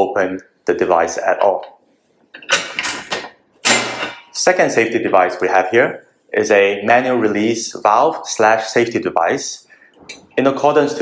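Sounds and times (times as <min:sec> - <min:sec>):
metal lid scraping and clanking: 0:02.4 - 0:04.4.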